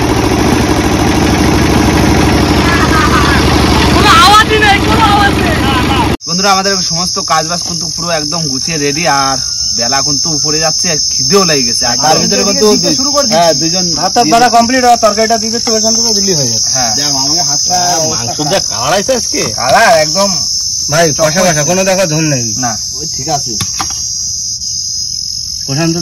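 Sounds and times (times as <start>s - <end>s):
insects droning: 0.0s - 26.0s
man talking: 6.2s - 23.6s, 25.6s - 26.0s.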